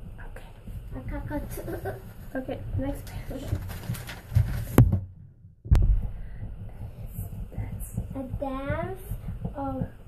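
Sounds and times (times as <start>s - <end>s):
book thumping on wooden table: 4.3s - 5.1s.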